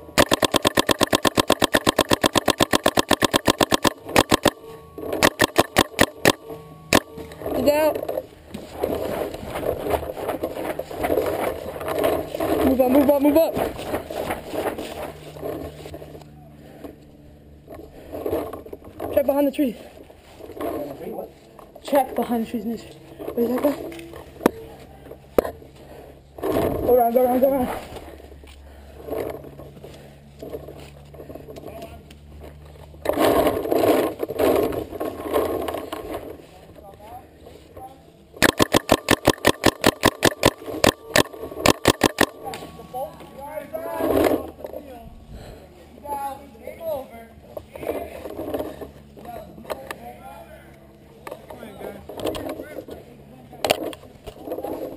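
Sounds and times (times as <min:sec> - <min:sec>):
paintball marker firing: 0:00.2 - 0:04.6, 0:05.2 - 0:07.1, 0:38.4 - 0:42.4.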